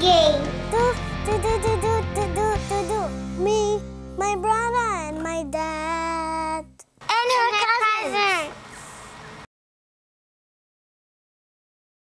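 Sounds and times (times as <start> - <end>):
backing track music: 0.0 - 6.2
child singing a jingle: 0.0 - 8.4.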